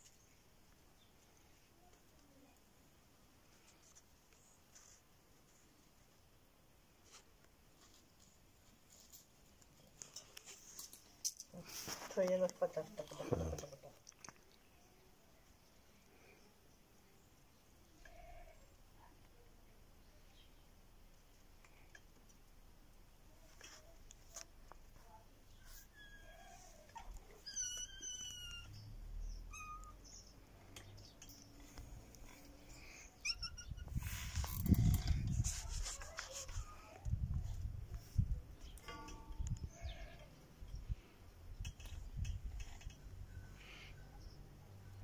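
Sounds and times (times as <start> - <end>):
soft brief scratch: 33.9 - 36.8.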